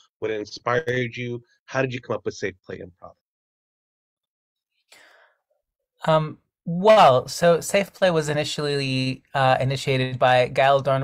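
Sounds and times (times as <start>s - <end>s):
faint breath: 4.9s - 5.6s.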